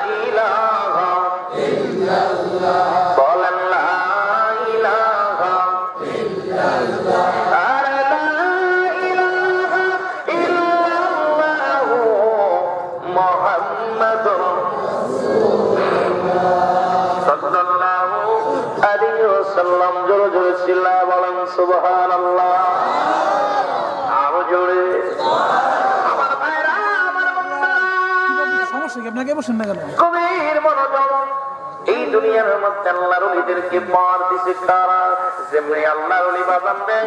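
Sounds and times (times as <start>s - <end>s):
men singing religious chant: 0.0s - 29.0s.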